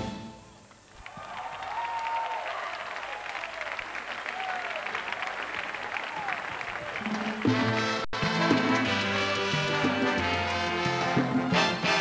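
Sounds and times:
audience applauding: 0.9 - 10.1.

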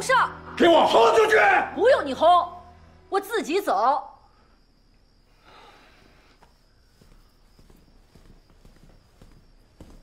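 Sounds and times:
faint footsteps on hard floor: 6.4 - 10.0.

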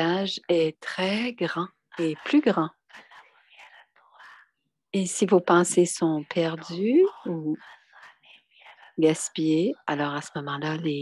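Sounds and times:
person speaking: 0.0 - 4.4, 5.0 - 11.0
breathy whisper-like voice: 1.9 - 4.6, 6.4 - 9.9.

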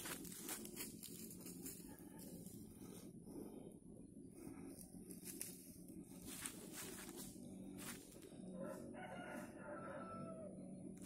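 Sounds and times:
faint rooster crowing: 1.6 - 2.8, 8.4 - 11.0.

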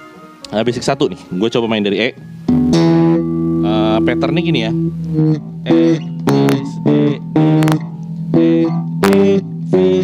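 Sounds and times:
slapped electric bass notes: 0.0 - 10.0.

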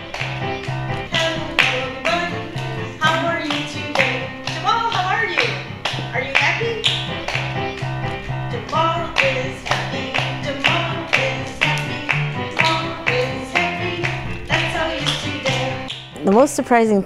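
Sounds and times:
electronic keyboard music: 0.0 - 17.0
person singing: 1.0 - 6.9, 8.2 - 15.9.

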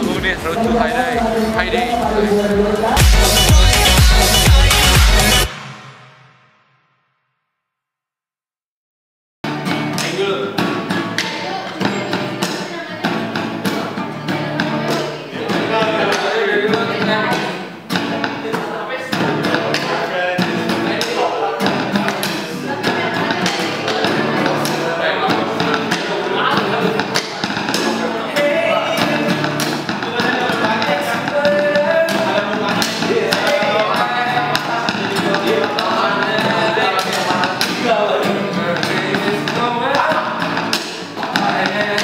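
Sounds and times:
voices singing along: 0.0 - 6.1, 10.9 - 42.0
acoustic guitar strumming: 0.0 - 6.6, 9.4 - 42.0.

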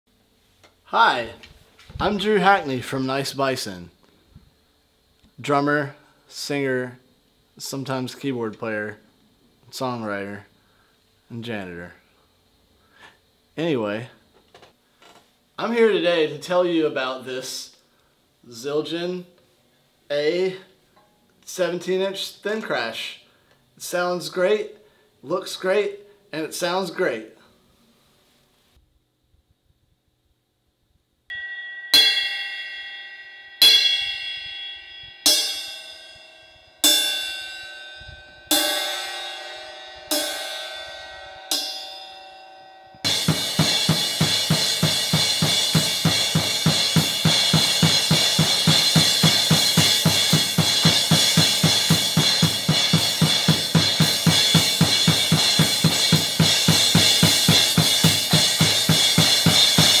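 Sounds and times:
crash cymbal struck: 31.3 - 60.0
drum kit: 38.5 - 42.2, 43.0 - 60.0.

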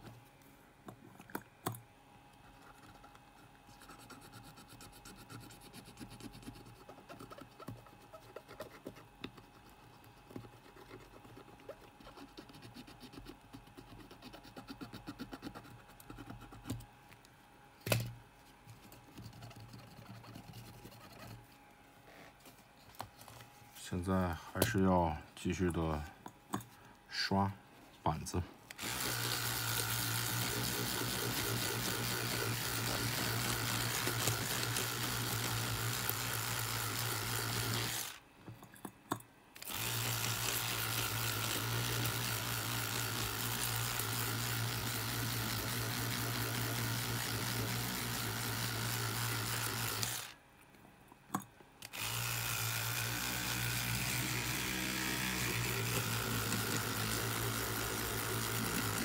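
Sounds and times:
electric toothbrush running: 28.8 - 38.2, 39.6 - 50.4, 51.8 - 59.0.

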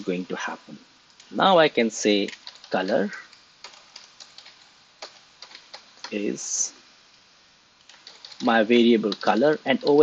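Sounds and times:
computer keyboard keystrokes: 2.3 - 6.2, 7.8 - 8.5, 9.1 - 10.0.

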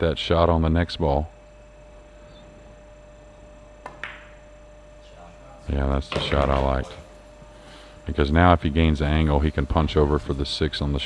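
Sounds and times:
faint arena hum: 0.0 - 11.0
cue striking ball: 3.8 - 4.4.

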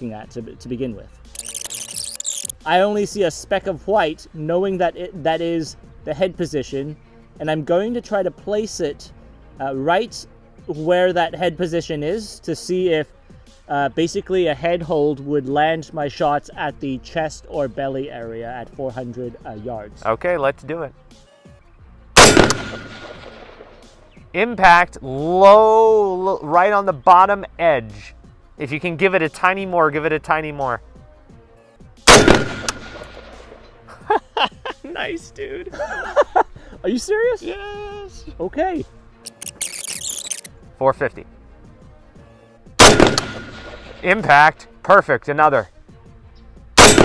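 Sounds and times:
rifle shot with echo: 22.2 - 23.9, 32.1 - 33.6, 42.8 - 44.0, 46.8 - 47.0.

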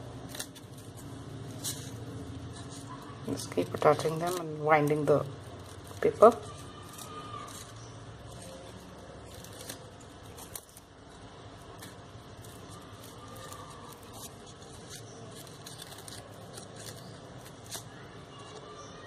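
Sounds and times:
crepe paper rustling and crinkling: 0.1 - 19.0.

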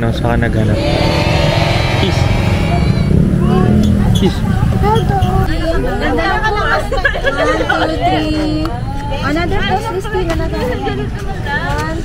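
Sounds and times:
people talking: 0.1 - 8.6
steady low rumble: 0.7 - 4.8.

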